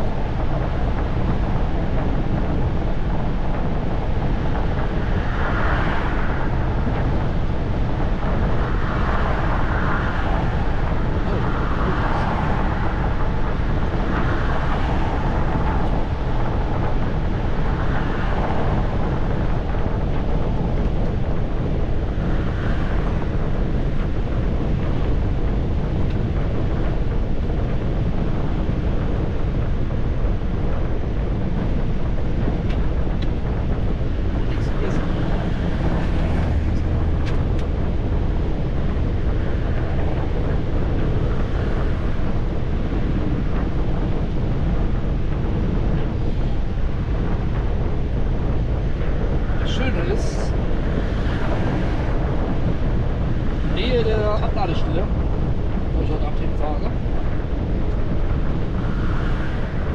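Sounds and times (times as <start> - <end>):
deep even rumble: 0.0 - 59.9
road and wind noise in vehicle: 0.0 - 59.9.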